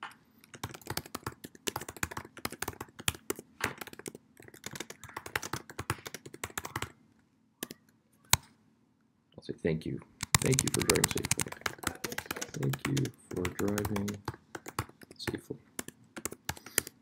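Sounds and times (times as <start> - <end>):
typing on computer keyboard: 0.4 - 6.9, 10.2 - 17.0.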